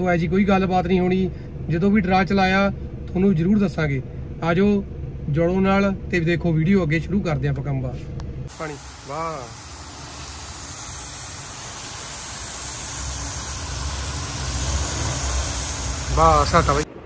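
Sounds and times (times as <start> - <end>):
person speaking: 8.5 - 9.7, 16.0 - 16.9
hose nozzle spraying water: 8.5 - 16.9.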